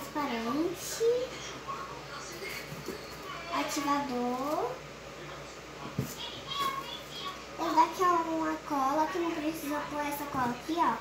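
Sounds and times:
faint child's voice: 0:06.0 - 0:11.0.

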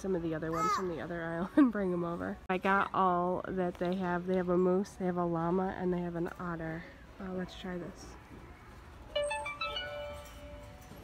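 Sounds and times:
electronic toy playing tune: 0:09.2 - 0:10.5.

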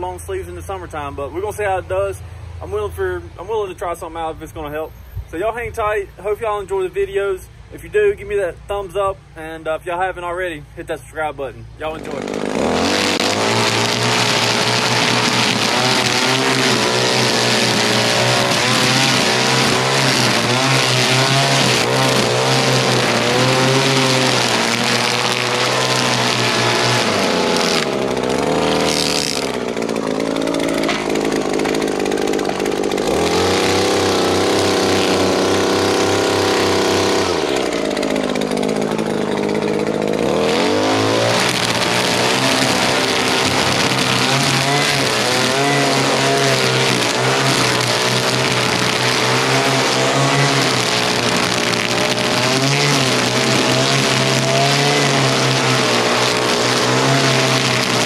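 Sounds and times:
string trimmer cutting grass: 0:11.2 - 0:58.0.

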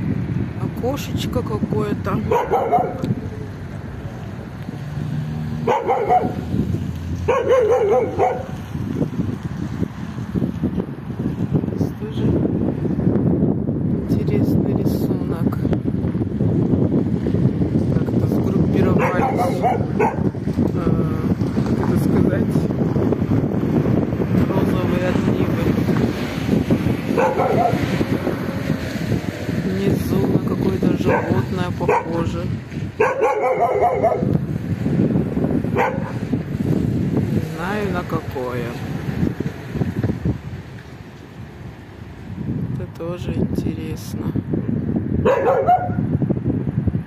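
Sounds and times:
wind noise on microphone: 0:00.0 - 0:47.0
dog barking: 0:02.3 - 0:03.2, 0:05.6 - 0:06.5, 0:07.3 - 0:08.6, 0:18.9 - 0:20.4, 0:27.1 - 0:28.0, 0:31.0 - 0:32.2, 0:33.0 - 0:34.3, 0:35.7 - 0:36.2, 0:45.2 - 0:46.1.

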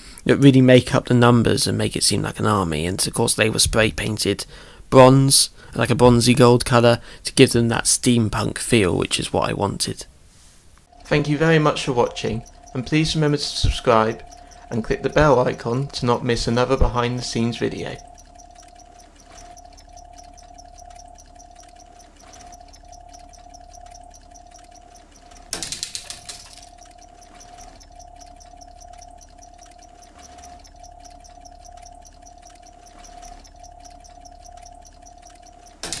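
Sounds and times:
low hum: 0:10.9 - 0:36.0
pulsing electronic drone: 0:10.9 - 0:36.0.

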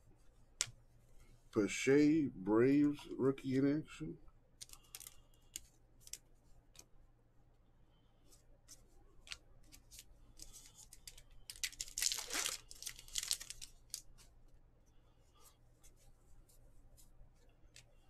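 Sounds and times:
wrapper tearing and crinkling: 0:11.0 - 0:14.1.

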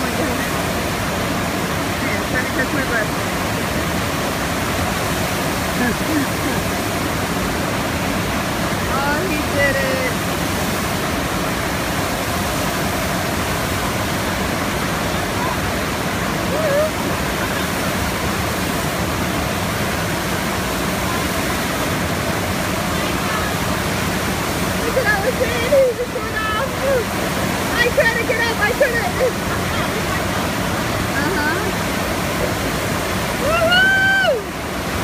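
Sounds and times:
rush of streaming water: 0:00.0 - 0:35.0.

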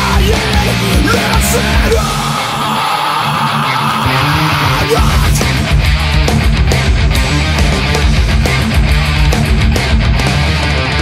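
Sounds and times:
distorted electric guitar strumming: 0:00.0 - 0:11.0
metal band playing: 0:00.0 - 0:11.0.

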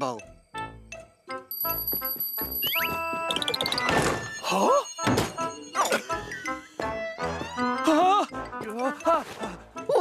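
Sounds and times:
cartoon music score: 0:00.2 - 0:10.0
cartoon thunk: 0:05.0 - 0:05.5.

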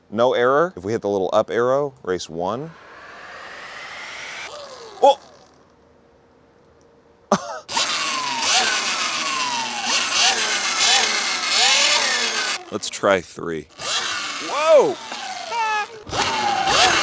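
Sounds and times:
electric motor whine: 0:02.6 - 0:05.7, 0:07.7 - 0:12.9, 0:13.7 - 0:17.0
excited shouts: 0:14.4 - 0:17.0.

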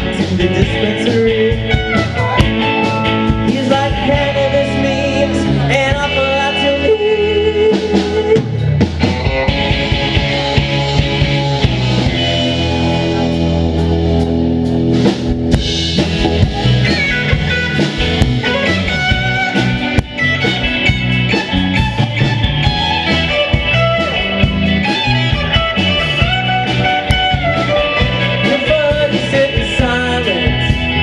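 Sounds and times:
drum kit beat: 0:00.0 - 0:31.0
electric bass: 0:00.0 - 0:31.0
electric guitars: 0:00.0 - 0:31.0.

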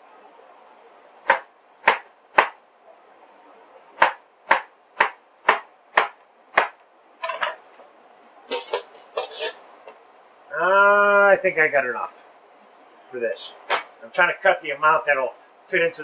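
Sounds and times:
knife chopping on cutting board: 0:01.3 - 0:02.6, 0:04.0 - 0:06.8.

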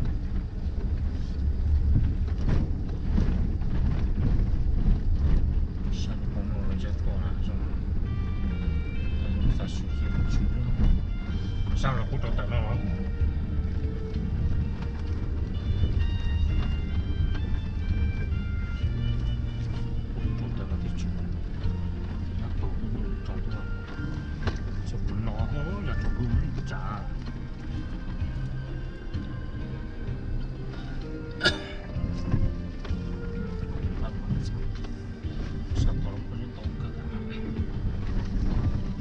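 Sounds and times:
vehicle rumble on dirt road: 0:00.0 - 0:39.0.

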